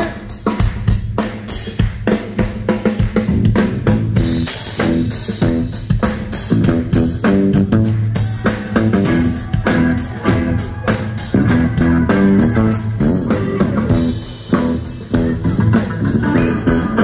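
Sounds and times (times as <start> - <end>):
audience clapping along: 0.0 - 3.2, 7.2 - 13.0
live blues-rock band: 0.0 - 17.0.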